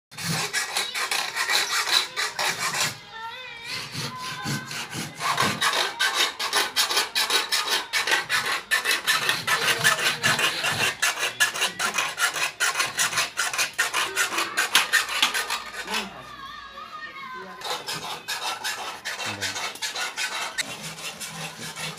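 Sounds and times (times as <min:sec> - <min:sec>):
rasp scraping wood: 0:00.1 - 0:03.0, 0:03.6 - 0:16.2, 0:17.6 - 0:21.9.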